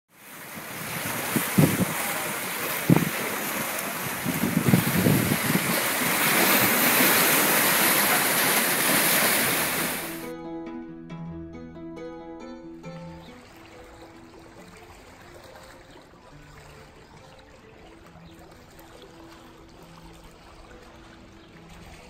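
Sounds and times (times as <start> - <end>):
waves splashing on rocks: 0.2 - 10.3
wind on microphone: 0.4 - 10.2.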